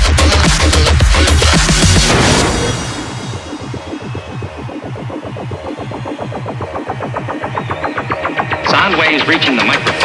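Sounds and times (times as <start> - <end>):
electronic dance music: 0.0 - 10.0
pulsing bass beat: 0.0 - 10.0.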